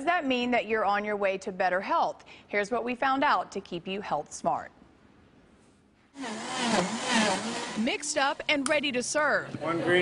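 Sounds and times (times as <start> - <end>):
blender motor whining: 6.2 - 8.5.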